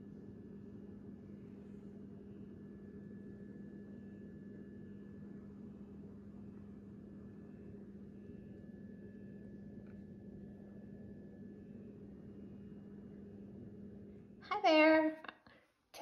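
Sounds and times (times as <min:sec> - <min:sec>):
low hum: 0:00.1 - 0:14.4.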